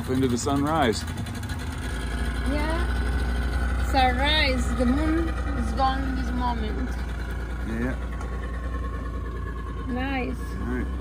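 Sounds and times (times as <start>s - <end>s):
outboard motor running: 0.0s - 11.0s.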